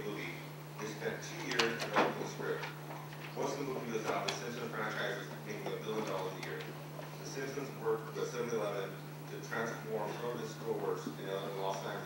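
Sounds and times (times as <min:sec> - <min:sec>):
steady low hum: 0:00.0 - 0:12.0
man speaking: 0:03.4 - 0:12.0.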